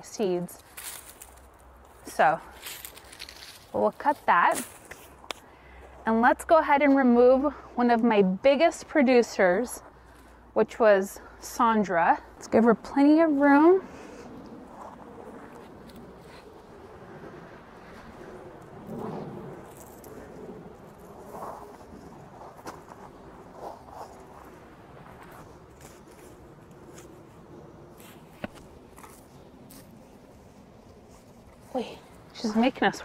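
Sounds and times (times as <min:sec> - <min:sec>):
soil crunching and scraping: 0:00.6 - 0:05.5, 0:14.6 - 0:16.8, 0:17.5 - 0:33.0.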